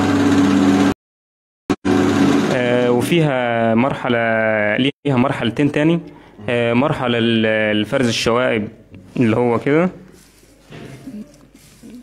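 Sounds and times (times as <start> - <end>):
man talking: 2.5 - 10.1.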